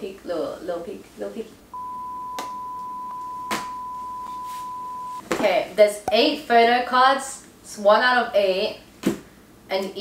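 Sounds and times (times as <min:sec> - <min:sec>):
sine-wave test tone: 0:01.7 - 0:05.2.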